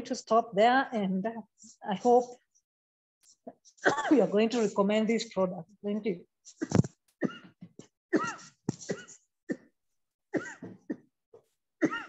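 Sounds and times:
woman coughing: 3.8s - 4.3s, 6.5s - 9.7s, 10.3s - 11.1s, 11.8s - 12.0s.

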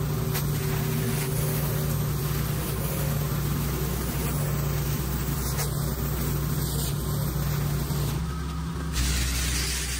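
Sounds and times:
water spray hissing on concrete: 0.0s - 8.2s, 8.9s - 9.9s
pressure washer engine humming: 0.0s - 9.9s.

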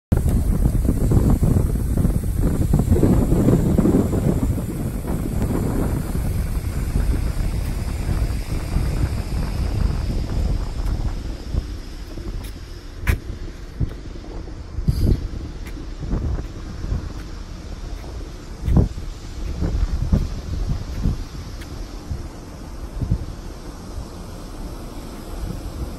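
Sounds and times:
wind buffeting a microphone: 0.1s - 25.9s.

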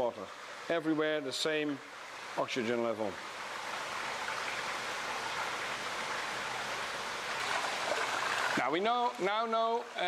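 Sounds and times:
water pouring into pond: 3.2s - 10.0s.

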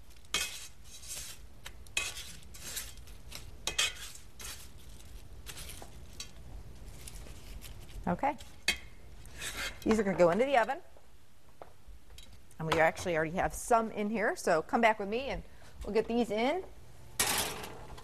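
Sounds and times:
crunchy rustles of chips: 2.2s - 8.6s.

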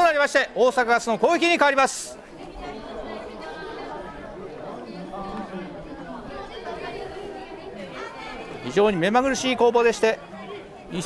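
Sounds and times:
background chatter of people: 0.0s - 11.0s.

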